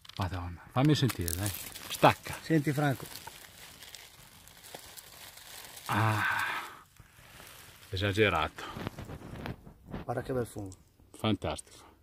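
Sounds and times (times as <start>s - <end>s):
dry leaves rustling and crinkling: 1.0s - 9.5s
person saying ah: 5.9s - 6.7s.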